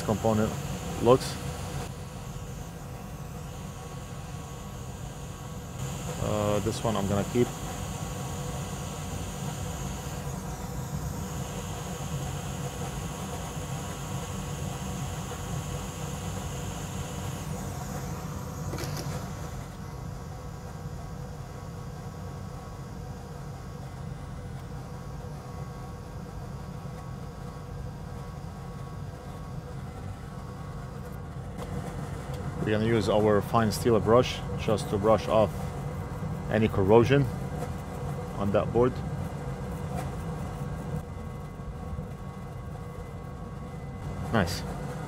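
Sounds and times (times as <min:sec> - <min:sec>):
high hiss: 0:00.0 - 0:20.1
electric fan running: 0:00.0 - 0:45.0.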